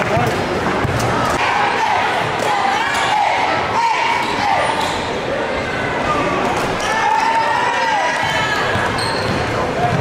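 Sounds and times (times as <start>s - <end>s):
echoing voices: 0.0s - 10.0s.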